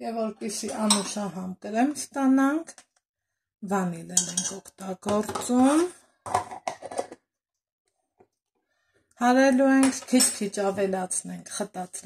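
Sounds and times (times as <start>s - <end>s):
woman speaking: 0.0s - 2.7s, 3.6s - 6.0s, 9.2s - 12.0s.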